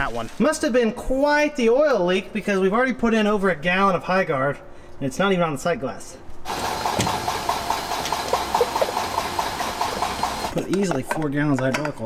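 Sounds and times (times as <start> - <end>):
oil pouring through a funnel: 6.5 - 10.5.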